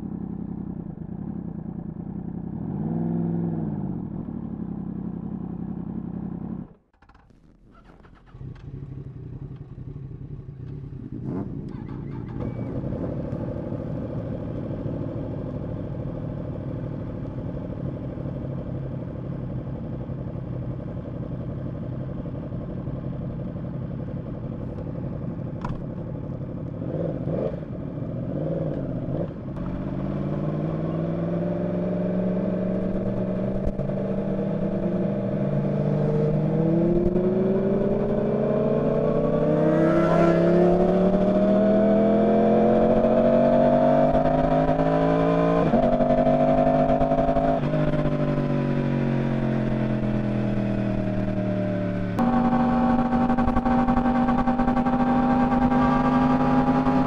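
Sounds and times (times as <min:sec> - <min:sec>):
motorcycle engine accelerating: 0:00.0 - 0:57.0.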